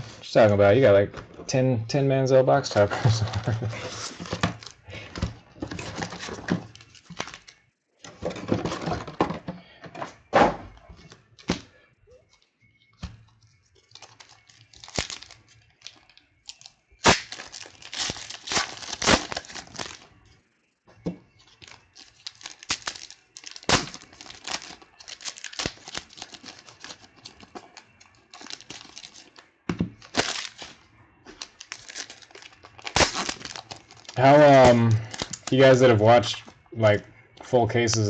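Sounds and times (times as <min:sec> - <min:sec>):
foil wrappers tearing and crinkling: 0:05.6 - 0:07.6, 0:13.8 - 0:20.1, 0:21.3 - 0:36.4.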